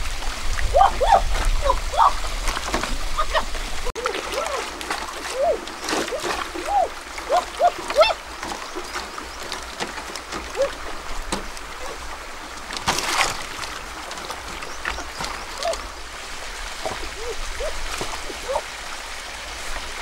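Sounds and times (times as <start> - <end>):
water splashing and sloshing: 0.0 - 20.0
chirp-like sounds: 14.5 - 16.1, 16.9 - 18.6.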